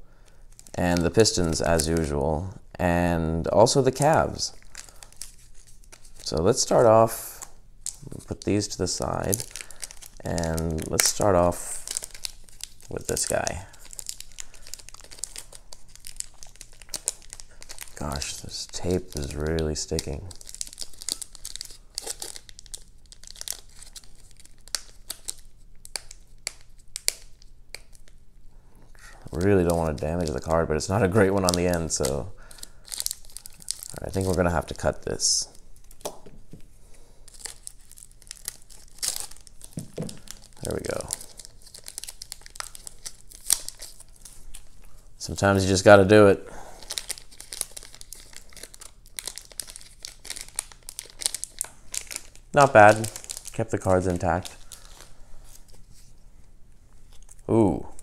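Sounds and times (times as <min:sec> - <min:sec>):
plastic wrapping crinkling: 0:00.2 - 0:02.2, 0:03.5 - 0:28.2, 0:28.9 - 0:58.0.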